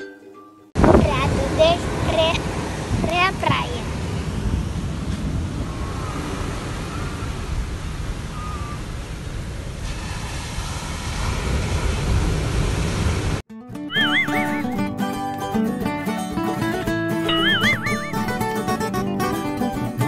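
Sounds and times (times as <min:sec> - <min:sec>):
wind buffeting microphone: 0:00.8 - 0:13.4
ocean surf: 0:00.8 - 0:14.8, 0:17.2 - 0:18.9
music with wavering high tone: 0:13.9 - 0:16.2, 0:17.1 - 0:19.3.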